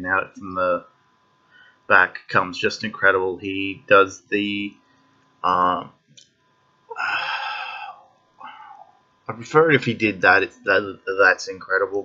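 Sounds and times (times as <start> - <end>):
man sighing: 6.9 - 8.8.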